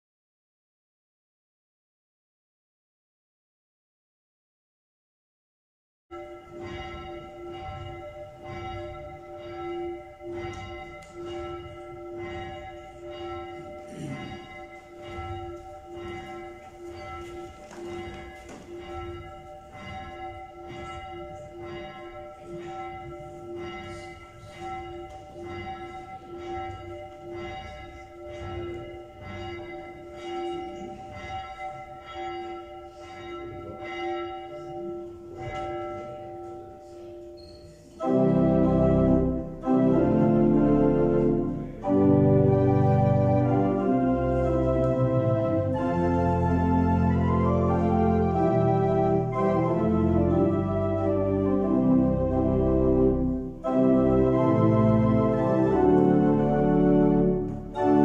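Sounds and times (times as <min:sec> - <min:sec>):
church bell tolling: 0:06.1 - 0:58.0.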